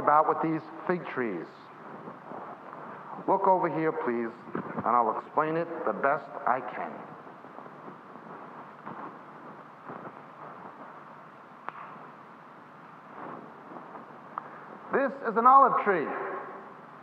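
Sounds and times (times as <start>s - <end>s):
faint shuffling or scraping: 1.1s - 11.4s, 12.0s - 15.1s.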